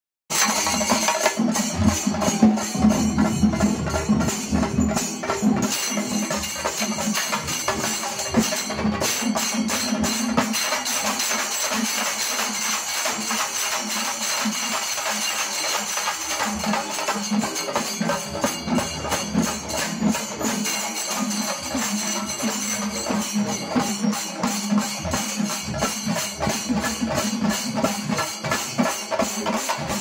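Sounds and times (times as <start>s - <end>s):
brass hand cymbals clashing: 0.3s - 30.0s
drums beaten with sticks: 0.3s - 30.0s.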